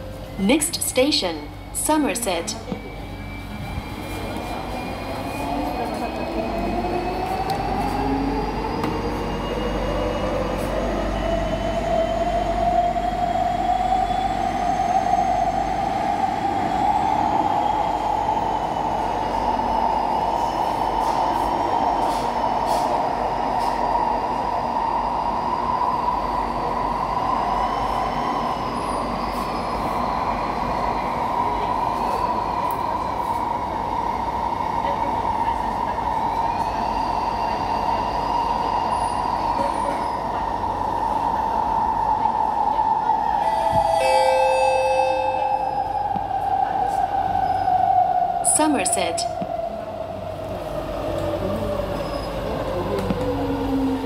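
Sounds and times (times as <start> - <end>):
train wheel and running noise: 0.0 - 54.0.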